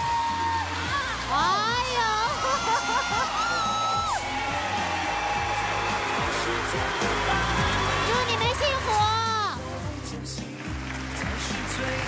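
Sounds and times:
audience applauding: 0:00.0 - 0:12.0
background music: 0:00.0 - 0:12.0.

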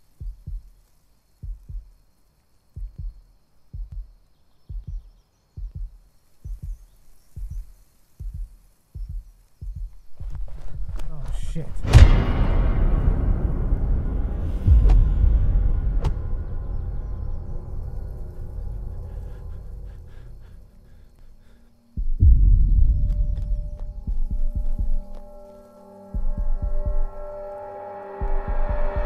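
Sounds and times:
low heartbeat pulse: 0:00.0 - 0:02.0, 0:02.7 - 0:27.5, 0:28.2 - 0:29.0
rumble: 0:06.5 - 0:29.0
sharp cinematic hits: 0:10.2 - 0:21.2.

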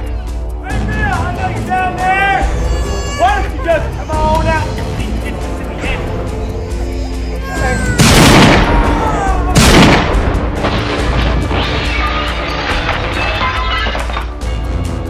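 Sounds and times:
background music: 0:00.0 - 0:15.0
revolver gunshots: 0:08.0 - 0:08.8, 0:09.6 - 0:13.4.

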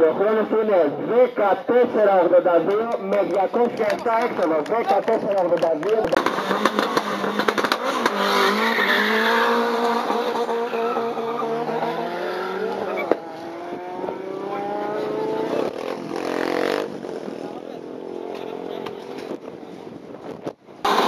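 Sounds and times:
race car engine accelerating: 0:06.1 - 0:19.3.

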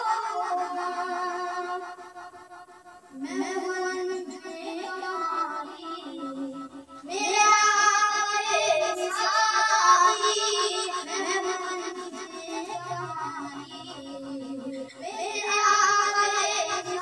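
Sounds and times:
boy singing unaccompanied: 0:00.0 - 0:17.0.

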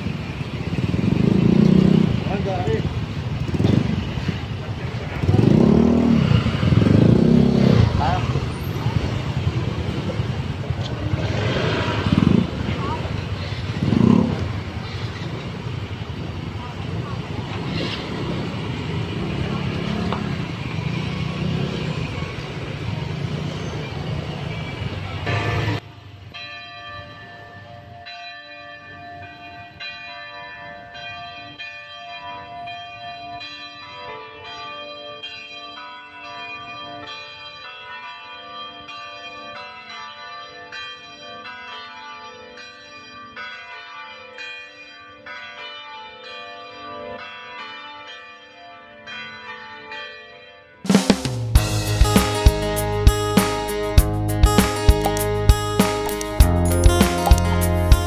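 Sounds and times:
outdoor crowd noise: 0:00.0 - 0:26.6, 0:50.8 - 0:58.0
church bells ringing: 0:00.0 - 0:50.9, 0:51.5 - 0:58.0
engine noise: 0:00.6 - 0:13.1.

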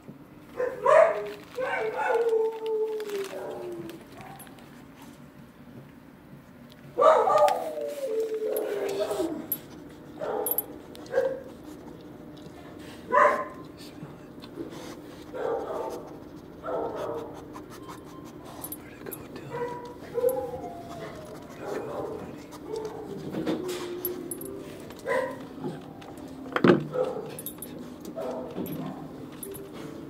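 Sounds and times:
dog panting and whimpering: 0:16.0 - 0:25.9.

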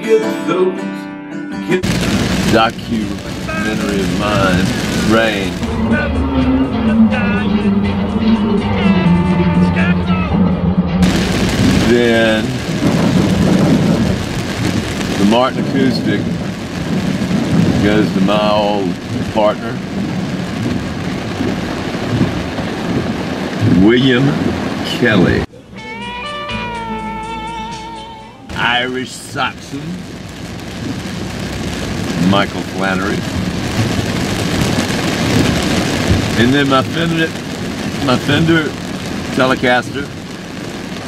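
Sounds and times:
heavy rain on windshield: 0:01.8 - 0:10.4, 0:11.0 - 0:25.5, 0:28.5 - 0:41.0
low rumble: 0:01.8 - 0:25.6
music with low note: 0:25.5 - 0:28.8.

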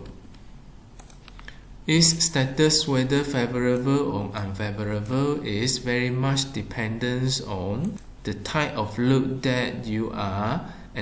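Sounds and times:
faint computer clicks: 0:01.0 - 0:01.6
person narrating: 0:01.8 - 0:11.0.

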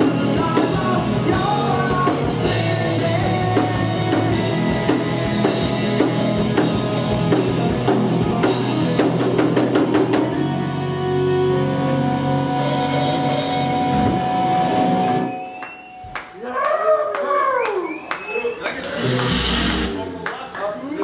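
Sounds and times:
drum kit: 0:00.0 - 0:10.9, 0:12.5 - 0:16.0
metal band playing: 0:00.0 - 0:15.4
person shouting: 0:16.4 - 0:17.8.

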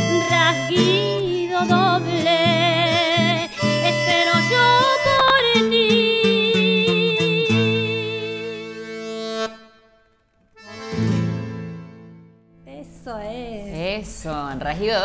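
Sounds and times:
accordion melody: 0:00.0 - 0:12.6
guitars strumming: 0:00.0 - 0:12.6.

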